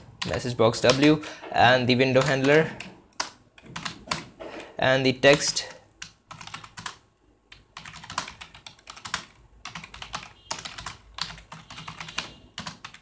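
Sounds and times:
typing on a keyboard: 2.2s - 4.3s, 5.3s - 13.0s.

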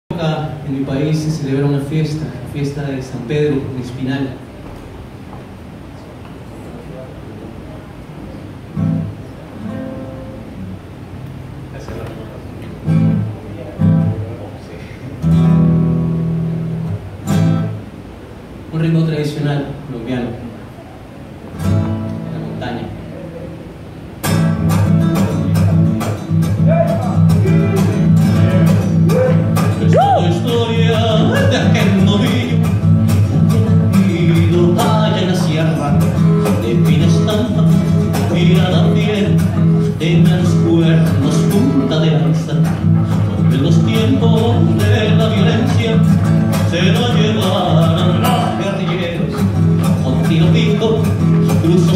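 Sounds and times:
acoustic guitar strumming chords: 8.6s - 14.4s, 15.1s - 18.2s, 21.5s - 22.6s, 23.5s - 51.9s.

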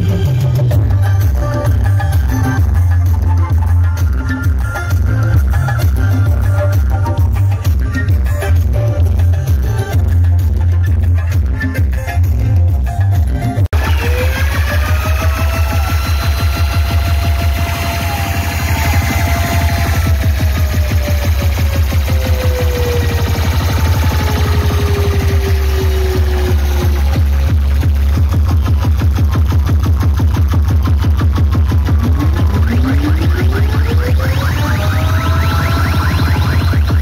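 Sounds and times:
electronic dance music: 0.0s - 37.0s
sliding synth tones: 31.1s - 37.0s.

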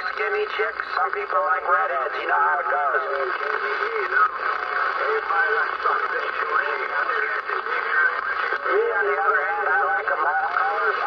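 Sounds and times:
man's voice over radio speaker: 0.0s - 11.0s
radio band noise hiss: 0.0s - 11.0s.

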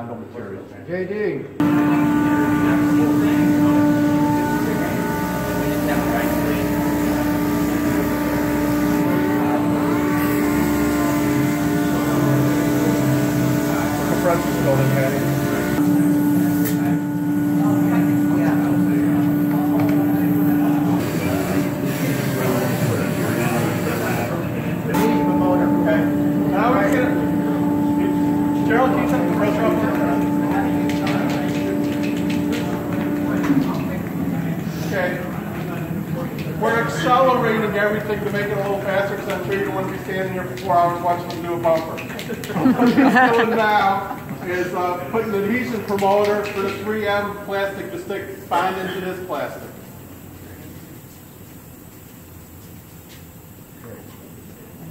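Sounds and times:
sander whining: 1.6s - 40.0s.

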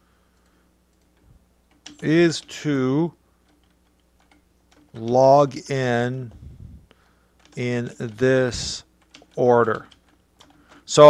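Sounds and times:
computer keyboard keystrokes: 0.4s - 2.5s, 3.4s - 5.2s, 7.4s - 8.2s, 9.0s - 10.9s.

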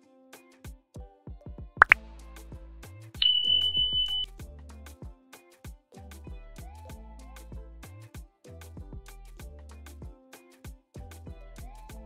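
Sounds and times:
instrumental background music: 0.0s - 12.0s
high steady ding tone: 3.2s - 4.3s.

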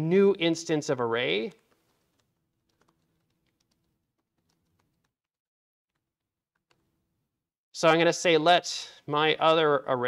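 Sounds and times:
faint typing on keyboard: 1.5s - 5.3s, 5.9s - 7.0s.

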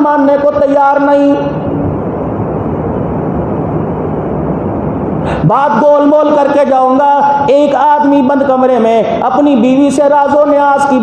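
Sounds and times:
rumbling background noise: 0.0s - 11.0s.

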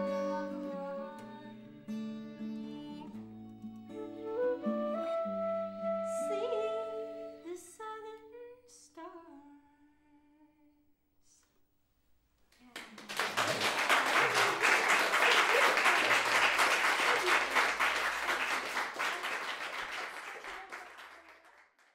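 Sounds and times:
audience applause: 12.8s - 21.9s.

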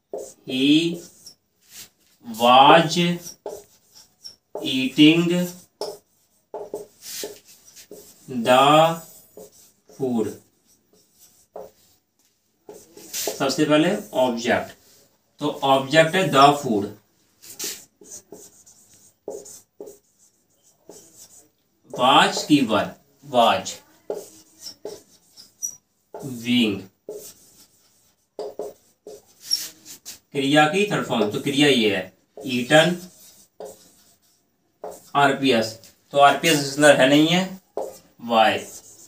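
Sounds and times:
marker pen writing on whiteboard: 0.0s - 39.0s.

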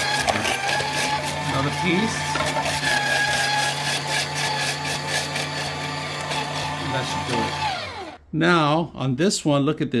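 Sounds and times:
electric grater motor humming: 0.0s - 8.2s
shredder drum grating cucumber: 0.0s - 8.2s.

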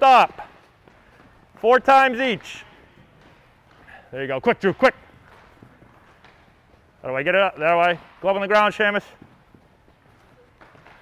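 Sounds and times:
footfalls on artificial turf: 0.0s - 11.0s.

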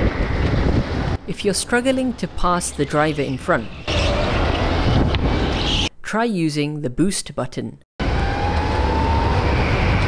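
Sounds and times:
wind rushing on microphone: 0.0s - 1.3s, 3.3s - 5.9s, 8.1s - 10.0s.

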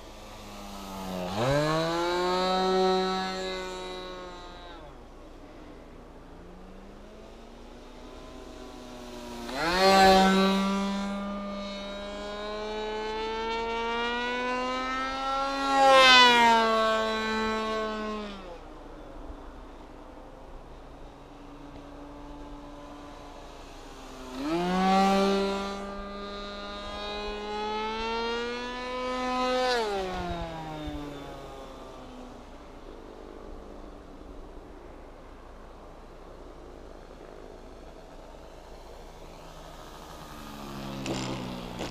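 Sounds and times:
propeller plane flying overhead: 0.0s - 41.9s
propeller aircraft engine buzzing: 35.6s - 41.9s.

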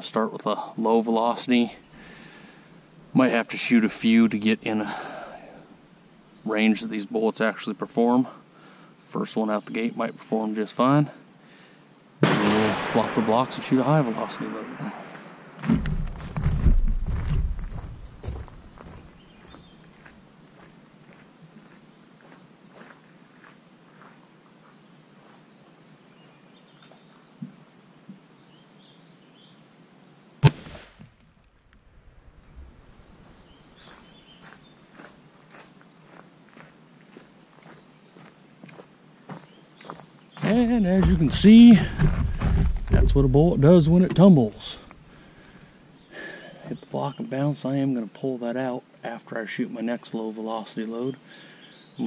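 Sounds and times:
rifle shot: 12.2s - 16.5s, 30.4s - 31.0s
footsteps: 14.8s - 24.2s, 33.2s - 45.1s
faint bird chirps: 19.2s - 20.1s, 33.2s - 35.0s, 39.3s - 40.6s.

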